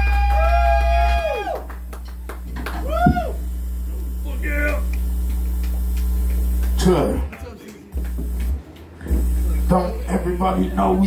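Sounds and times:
low bass drone: 0.0s - 7.3s, 8.0s - 11.0s.

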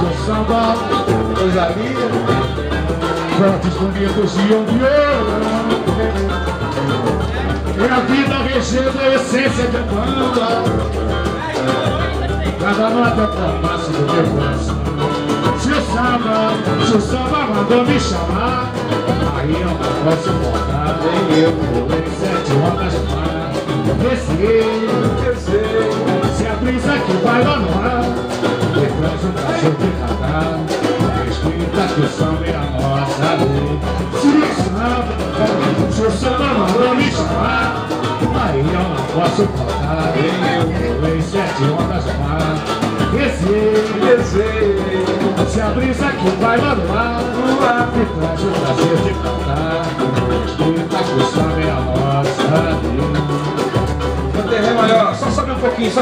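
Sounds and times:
live samba band: 0.0s - 56.0s
man singing into microphone: 0.0s - 56.0s.

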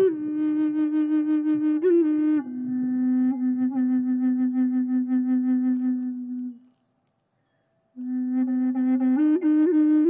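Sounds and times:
flute note with pulsing vibrato: 0.0s - 6.7s, 8.0s - 10.0s.

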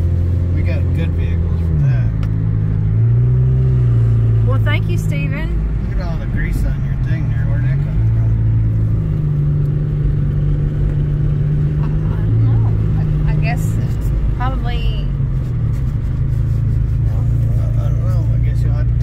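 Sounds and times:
car engine and tyres drone: 0.0s - 19.0s.

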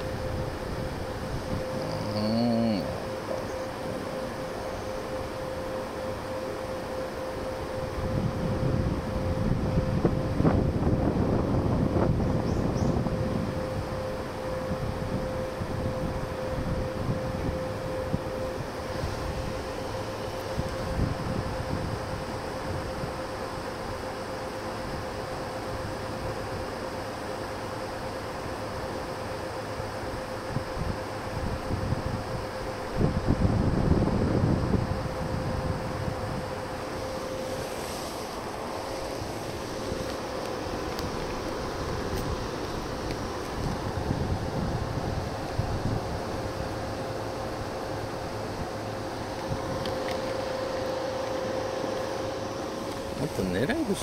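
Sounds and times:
faint steady hum: 0.0s - 54.0s
steady low rumble: 0.0s - 54.0s
wind buffeting microphone: 7.9s - 19.8s, 20.4s - 23.2s, 30.5s - 37.6s, 38.6s - 50.3s.

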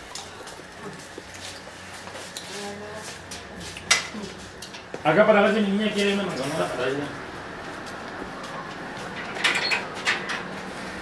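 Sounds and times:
faint voices: 7.9s - 9.4s.

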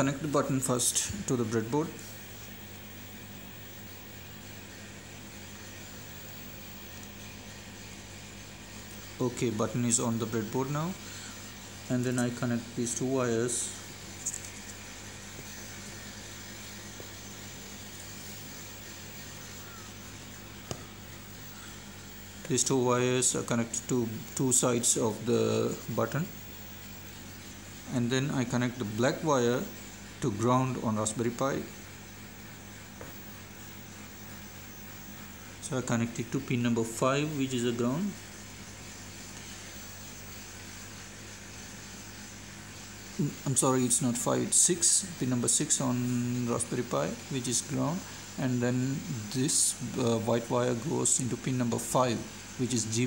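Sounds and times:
room hum and hiss: 0.0s - 53.0s
wires rustling and clicking: 14.1s - 16.0s.

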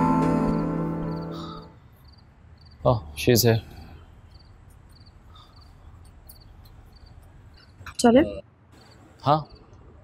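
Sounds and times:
crickets chirping: 0.0s - 7.9s, 8.7s - 9.9s.

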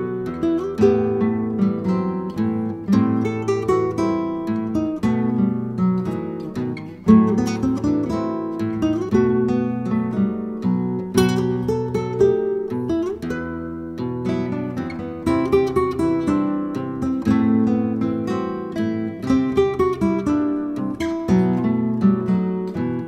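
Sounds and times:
acoustic guitar music: 0.0s - 23.0s.

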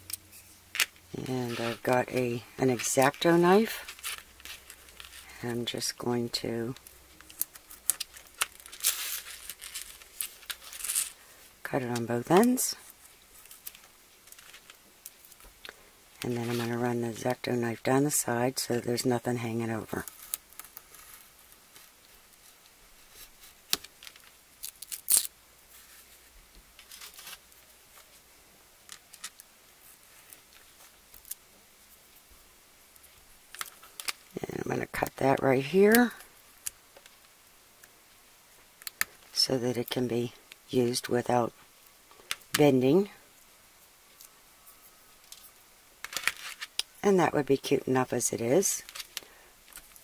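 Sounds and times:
tape ripping: 7.2s - 11.2s, 23.7s - 25.3s.

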